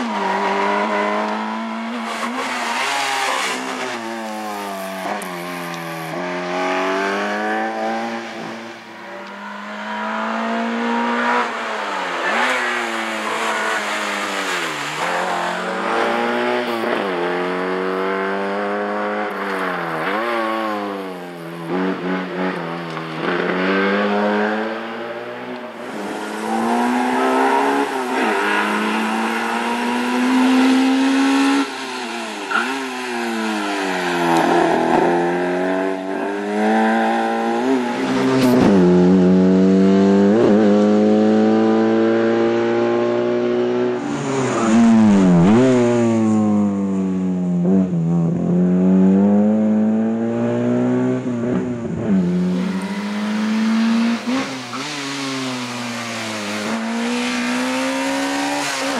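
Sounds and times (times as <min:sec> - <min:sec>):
car engine revving: 0:00.0 - 0:58.9.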